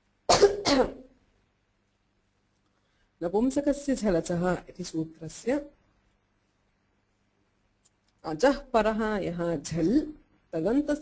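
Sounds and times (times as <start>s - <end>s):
woman coughing: 0.3s - 1.1s.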